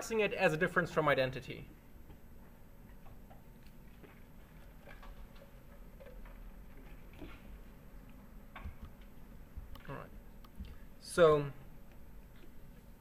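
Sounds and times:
man speaking: 0.0s - 1.7s, 11.0s - 11.6s.

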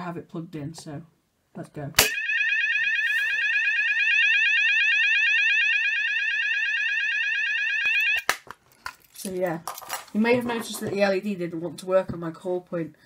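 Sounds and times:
alarm clicks: 2.0s - 8.4s
fire alarm rising sweep tone: 2.1s - 8.3s.

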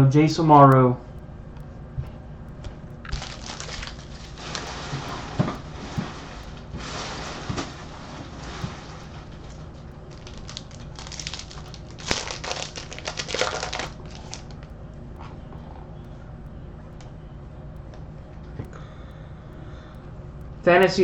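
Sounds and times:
sharp clicks: 0.6s - 4.1s
foil wrappers crinkling: 3.0s - 15.4s.

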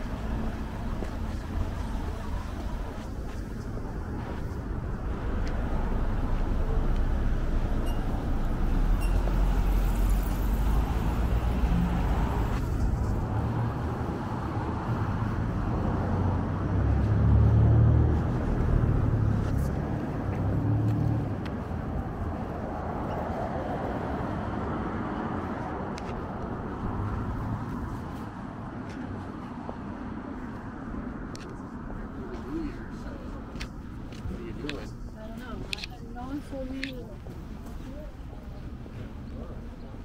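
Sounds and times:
car engines and tyres passing: 0.0s - 40.0s
vehicle passing by: 3.8s - 33.4s.

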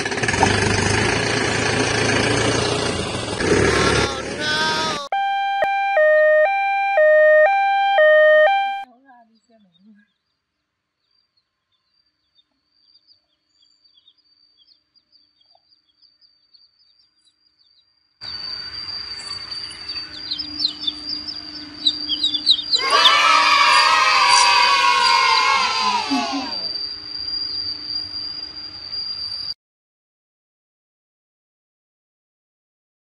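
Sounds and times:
downward sliding drawn-out tone: 5.1s - 8.8s
baby chicks peeping: 11.8s - 17.8s, 19.5s - 26.2s.

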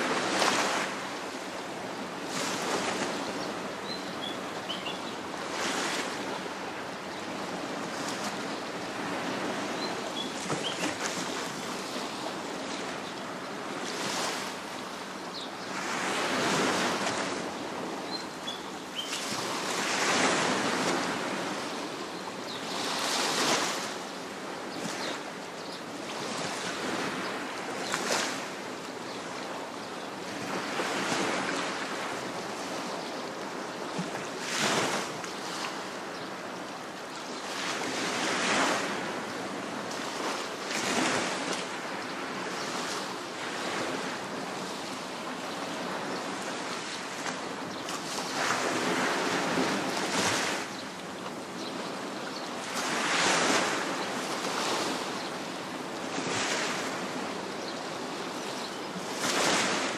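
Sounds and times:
sea waves breaking on shore: 0.0s - 59.9s.

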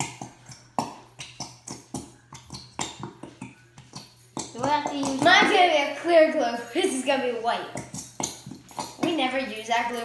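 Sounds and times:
glue bottles sputtering and popping: 0.0s - 10.0s.

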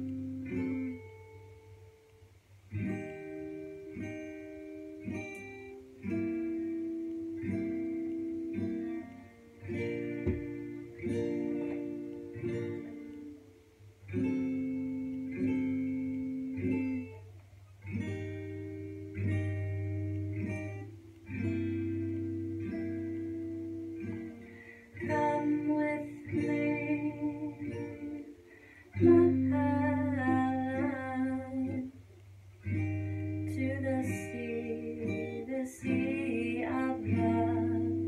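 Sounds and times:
acoustic guitar picked chords: 0.0s - 38.0s
woman singing softly: 24.9s - 32.0s, 33.4s - 38.0s.

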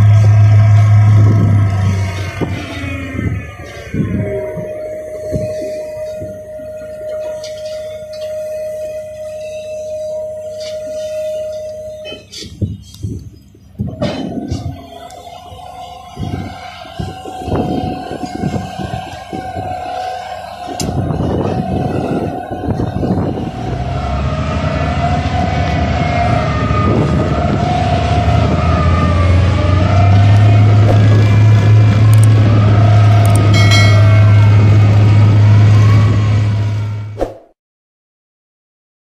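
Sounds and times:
mechanical drone: 0.0s - 37.2s
machinery knocks and clatter: 30.1s - 34.8s.

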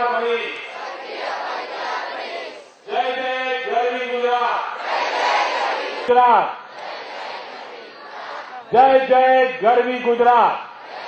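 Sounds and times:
chanting in long held notes: 0.0s - 2.9s, 4.7s - 8.8s
crowd reciting in unison: 0.0s - 11.0s.

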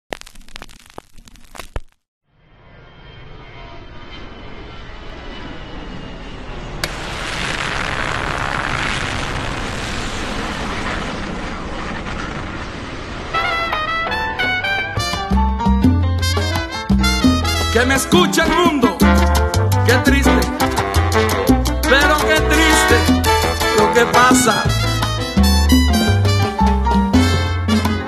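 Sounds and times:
crackling clicks: 0.0s - 2.1s
salsa band with brass: 13.3s - 28.0s.

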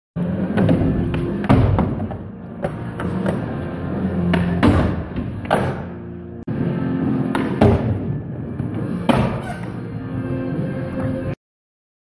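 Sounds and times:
music: 0.2s - 11.4s.

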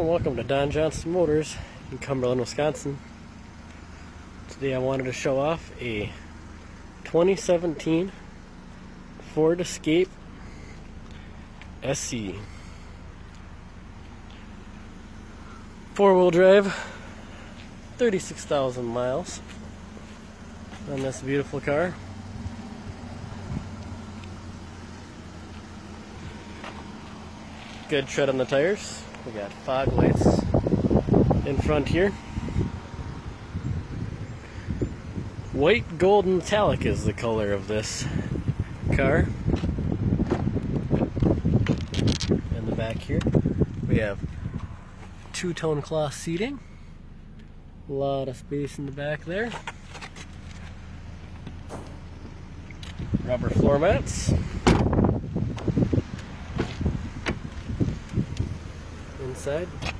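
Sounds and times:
car engine idling: 0.0s - 59.9s
vehicle low hum: 0.0s - 59.9s
faint rustles: 25.2s - 28.0s.

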